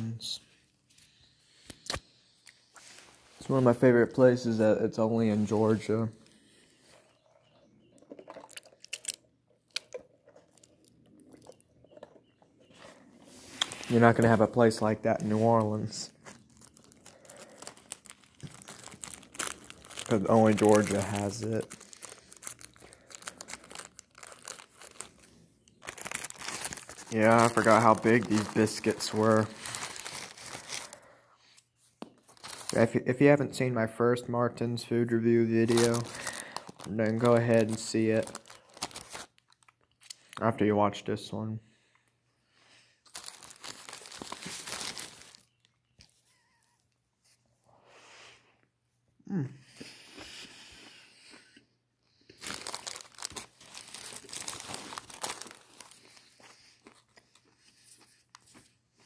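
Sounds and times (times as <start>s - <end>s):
wrapper crinkling: 8.0s - 12.2s, 12.8s - 31.0s, 32.2s - 32.9s, 35.5s - 39.8s, 43.0s - 45.6s, 52.4s - 58.6s.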